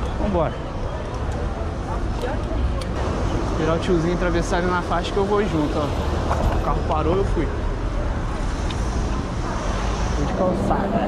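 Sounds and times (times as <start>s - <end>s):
faint indistinct voices: 0.0s - 11.0s
street traffic rumble: 0.0s - 11.0s.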